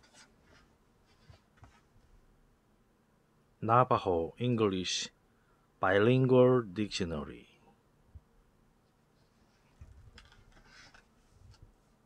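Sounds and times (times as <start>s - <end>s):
book rustling and closing: 9.7s - 11.6s.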